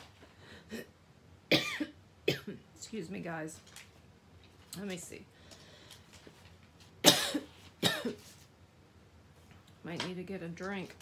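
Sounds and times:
woman coughing: 1.5s - 2.6s, 7.0s - 8.2s.

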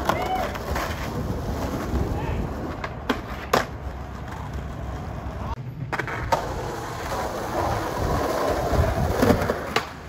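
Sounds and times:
skateboard tail cracking: 0.0s - 10.0s
skateboard wheels rolling on asphalt: 0.0s - 10.0s.

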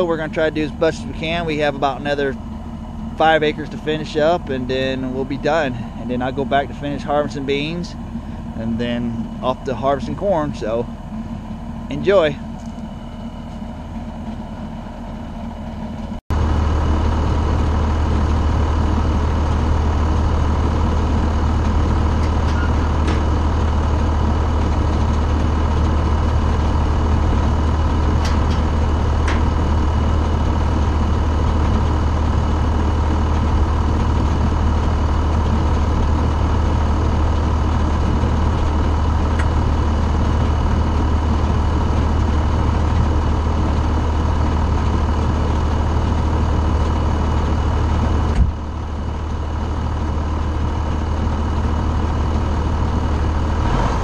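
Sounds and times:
tractor diesel engine running: 0.0s - 54.0s.

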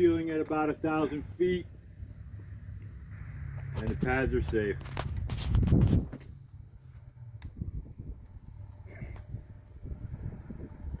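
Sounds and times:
wind buffeting microphone: 3.5s - 11.0s.

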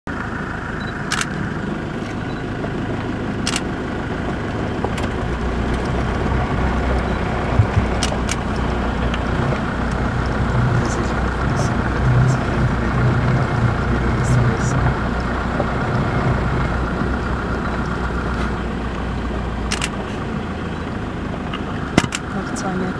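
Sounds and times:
vehicle engine running low: 0.1s - 22.9s.

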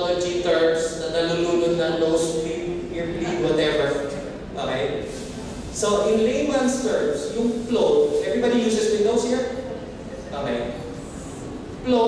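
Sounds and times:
man speaking into a microphone: 0.0s - 9.6s, 10.2s - 10.9s.

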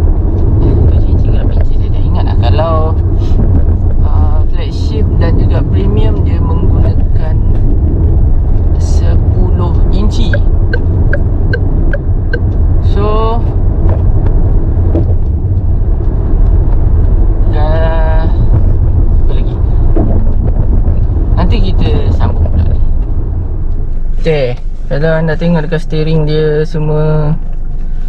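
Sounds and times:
road and engine rumble in car: 0.0s - 28.0s.

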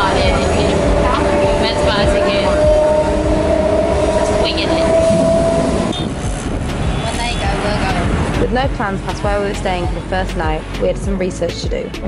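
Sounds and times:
train carriage rumble and whine: 0.0s - 11.0s
road traffic: 0.0s - 12.0s.

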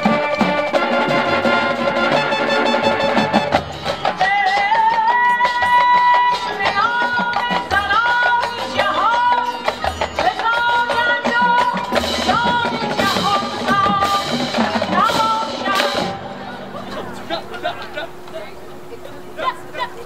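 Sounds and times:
marching band percussion: 0.0s - 18.9s
marching band melodic lead: 0.0s - 20.0s.

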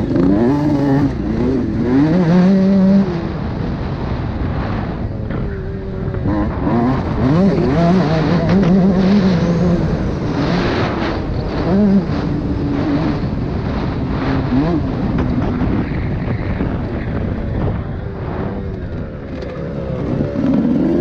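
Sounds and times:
motocross bike engine revving: 0.0s - 21.0s.

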